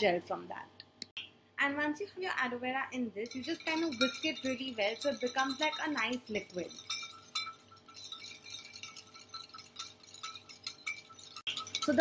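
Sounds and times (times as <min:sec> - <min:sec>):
whisk clinking against metal bowl: 0:03.3 - 0:12.0.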